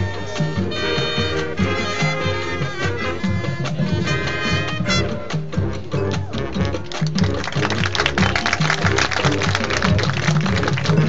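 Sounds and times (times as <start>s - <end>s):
bass line: 0.0s - 11.0s
brass and woodwinds: 0.0s - 11.0s
drumline percussion: 0.0s - 11.0s.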